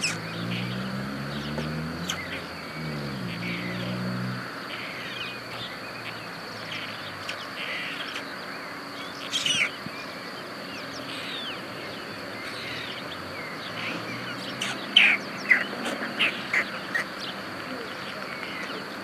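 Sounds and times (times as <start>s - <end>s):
birds chirping: 0.0s - 19.0s.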